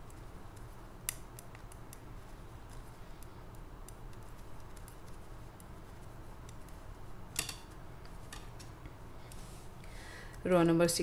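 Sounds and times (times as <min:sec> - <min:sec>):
knitting needles clicking: 0:00.0 - 0:09.4.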